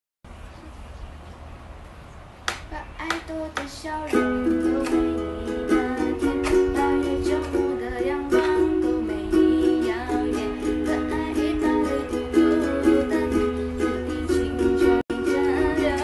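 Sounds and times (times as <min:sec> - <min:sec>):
ukulele strumming: 0:02.5 - 0:16.0
woman singing pop song: 0:02.7 - 0:16.0.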